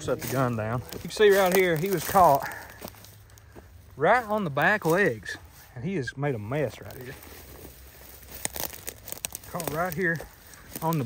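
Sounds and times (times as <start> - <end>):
dry twigs crackling and snapping: 0.0 - 5.8, 6.4 - 11.0.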